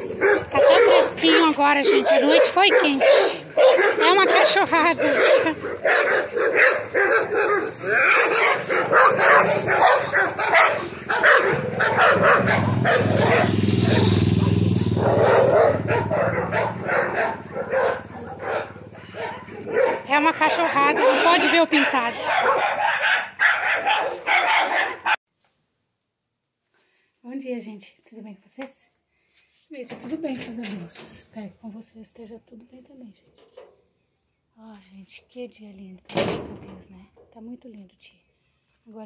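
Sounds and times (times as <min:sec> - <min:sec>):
handling and movement noise: 0:00.0 - 0:15.0
dogs barking: 0:00.0 - 0:25.2.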